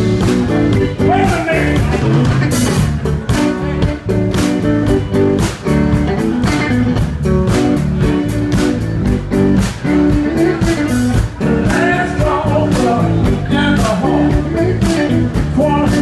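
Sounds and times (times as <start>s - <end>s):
bass guitar: 0.0s - 16.0s
drums playing steady beat: 0.0s - 16.0s
electric guitar lead: 0.0s - 16.0s.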